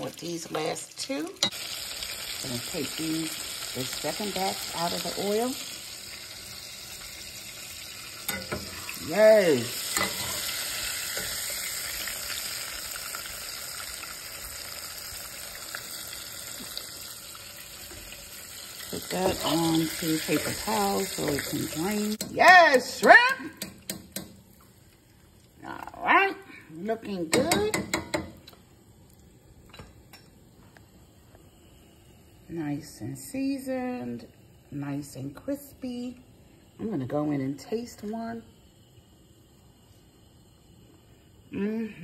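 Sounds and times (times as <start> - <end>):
shrimp sizzling in hot oil: 0.0 - 34.3.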